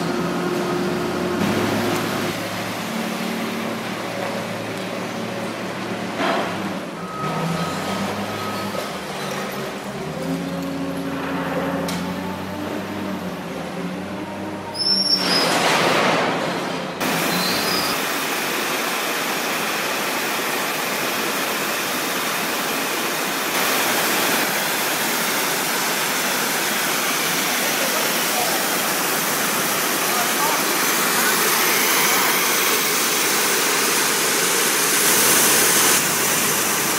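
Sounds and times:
diesel engine running: 0.0 - 14.8
water jet cleaner hissing: 17.0 - 36.9.

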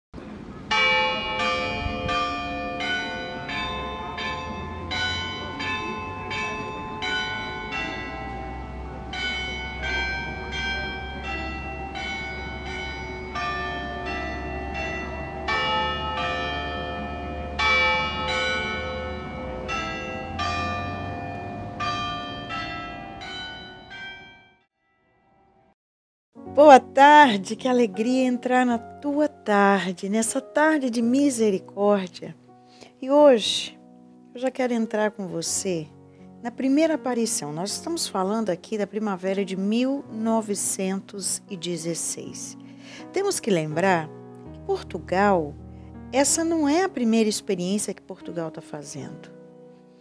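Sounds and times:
church bells ringing: 0.6 - 25.3, 46.2 - 47.2.

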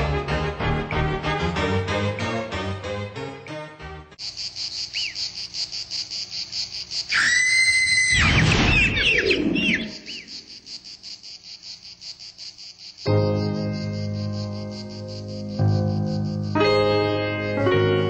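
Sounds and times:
music: 0.0 - 4.2, 13.1 - 18.0
insects chirping in pulsing trill: 4.2 - 18.0
loud whistled call: 4.8 - 5.4, 7.0 - 10.5.

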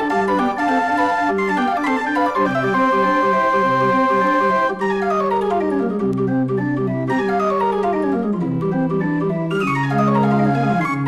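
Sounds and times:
mechanical barrel organ playing: 0.0 - 11.0.

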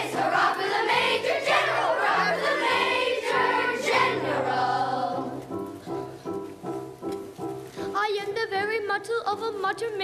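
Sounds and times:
children's chorus singing: 0.0 - 5.4.

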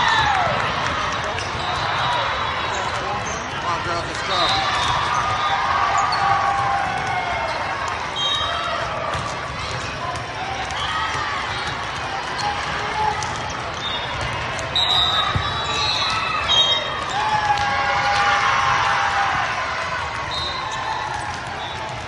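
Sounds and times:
players calling: 0.0 - 22.0
spectators chatter: 0.0 - 22.0
shoes squeaking on court floor: 1.4 - 17.3.

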